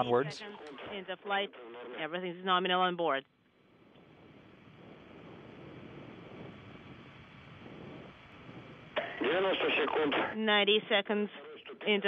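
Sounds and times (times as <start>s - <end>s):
distant rocket engine roar: 3.7s - 10.4s.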